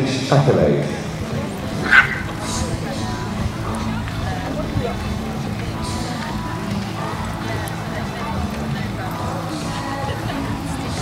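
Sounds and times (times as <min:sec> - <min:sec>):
dog yipping: 0:01.8 - 0:02.5.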